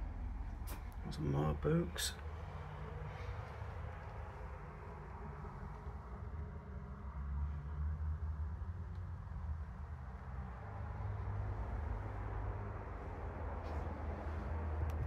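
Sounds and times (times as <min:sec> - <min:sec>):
road traffic rumble: 0:00.0 - 0:15.0.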